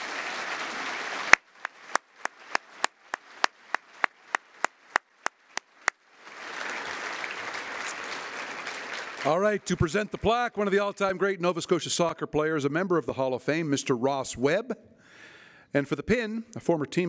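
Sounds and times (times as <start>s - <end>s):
audience applause: 0.0s - 11.0s
single sharp claps: 1.2s - 6.0s.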